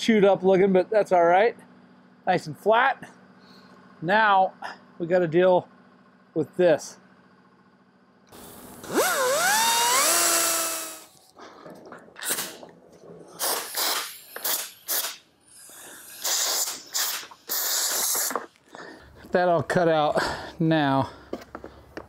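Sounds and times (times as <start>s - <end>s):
die grinder cutting plastic: 8.4s - 11.2s, 12.2s - 12.6s, 13.3s - 18.5s.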